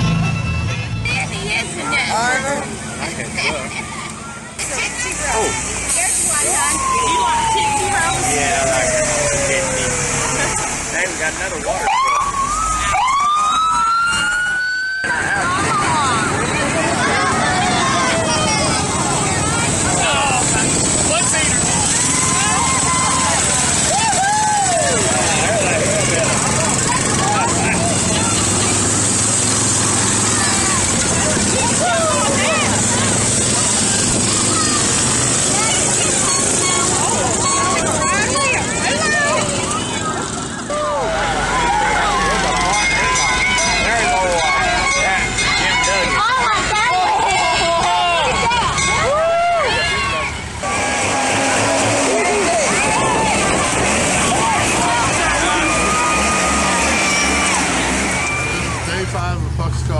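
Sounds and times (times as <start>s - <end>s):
crowd voices: 0.0s - 59.9s
motorcycle engines running: 0.0s - 59.9s
fire truck siren wailing: 5.4s - 59.2s.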